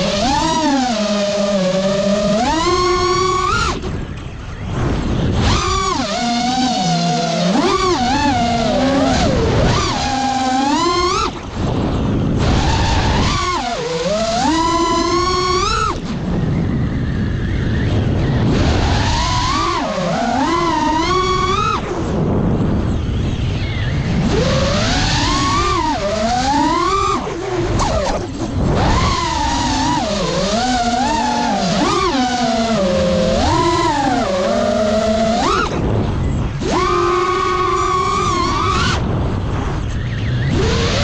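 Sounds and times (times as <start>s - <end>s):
drone motors whining: 0.0s - 41.0s.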